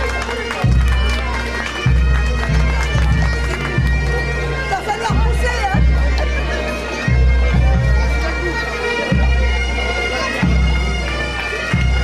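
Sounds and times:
bagpipes playing: 0.0 - 12.0
people's voices: 0.0 - 12.0.

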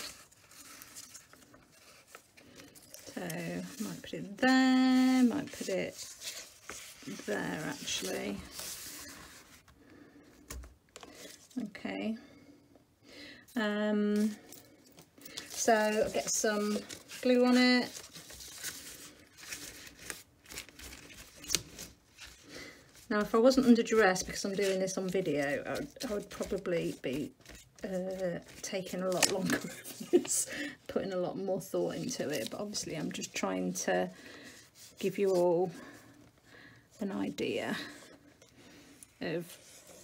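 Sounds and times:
paper rustling: 0.0 - 11.6, 15.1 - 30.7, 31.8 - 36.2
paper rustling and ticking: 15.1 - 30.6.

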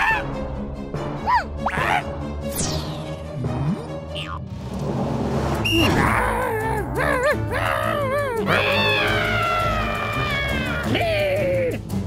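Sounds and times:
background music: 0.0 - 12.0
cartoon cries of effort: 6.0 - 11.7.

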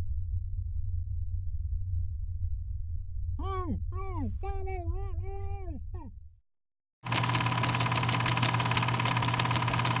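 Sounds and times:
machine humming and clattering: 7.0 - 10.0.

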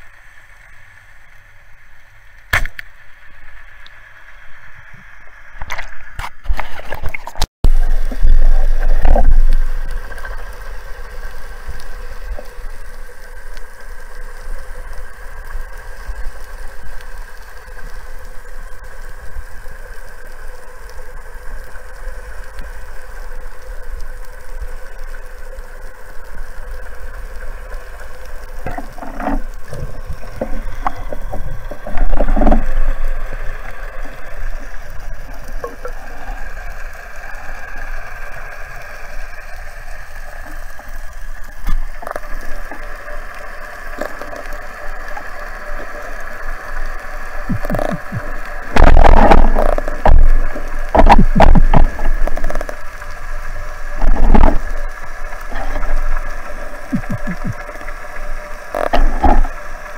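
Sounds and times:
boat engines hum underwater: 0.0 - 59.9.

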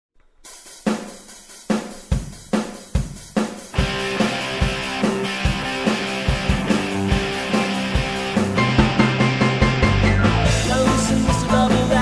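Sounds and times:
drum kit playing: 0.4 - 12.0
rock and roll band playing: 0.8 - 12.0.

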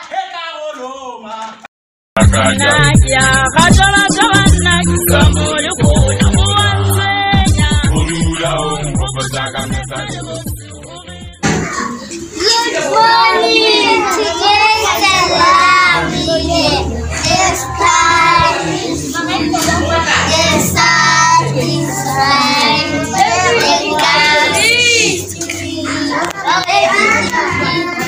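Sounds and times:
backing music with bass line: 2.2 - 11.5, 15.7 - 25.3
children singing: 2.2 - 28.0.

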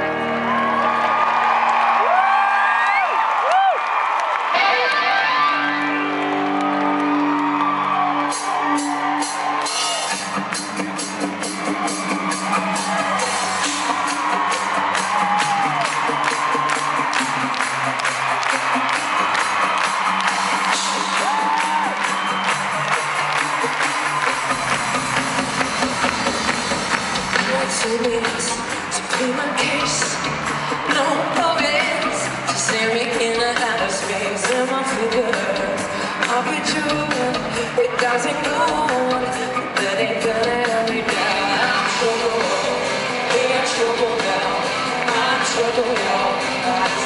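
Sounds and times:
crowd whooping and screaming: 0.0 - 40.3
live band playing: 4.5 - 47.0
steady drum beat: 8.2 - 37.6.

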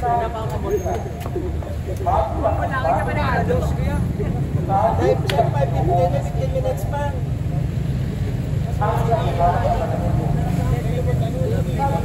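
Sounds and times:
people talking: 0.0 - 7.2, 8.7 - 12.0
street traffic rumble: 0.0 - 12.0.

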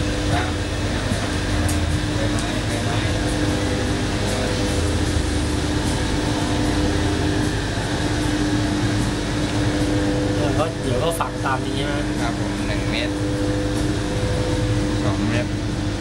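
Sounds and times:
machine humming: 0.0 - 16.0.

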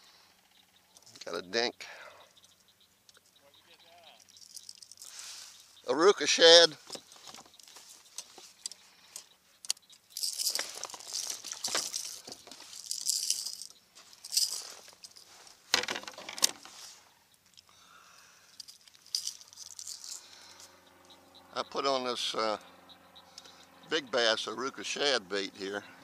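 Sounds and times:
fishing tackle clattering: 4.0 - 5.3, 6.5 - 16.8, 18.5 - 20.8.

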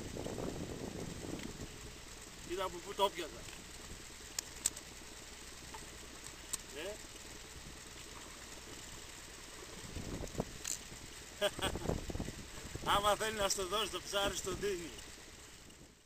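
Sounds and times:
low open-air rumble: 0.0 - 16.0.

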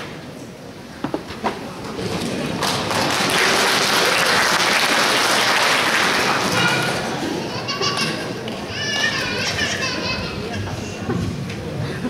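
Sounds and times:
audience murmur: 0.0 - 12.0.

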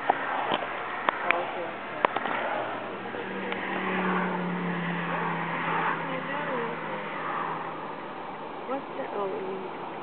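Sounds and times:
car road and engine drone: 0.0 - 10.0.

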